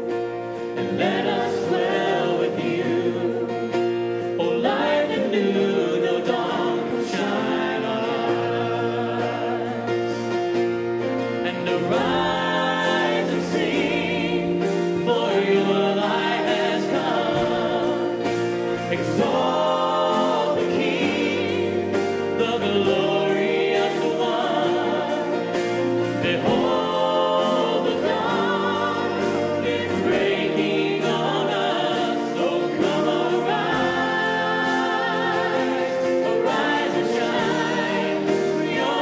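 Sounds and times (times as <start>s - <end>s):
worship band playing a hymn: 0.0s - 39.0s.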